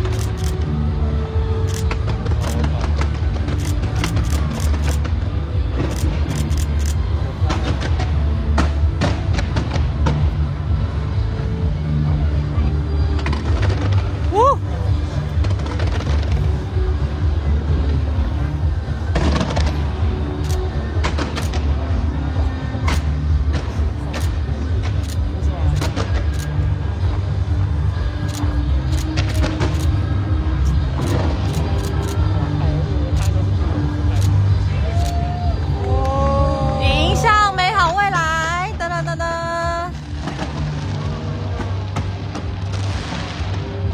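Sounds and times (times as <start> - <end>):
fireworks bursts rumbling: 0.0 - 34.7, 36.9 - 43.9
crowd voices: 0.0 - 43.9
music: 0.0 - 43.9
fireworks sharp cracks: 15.0 - 16.8, 19.0 - 22.0, 39.8 - 43.9.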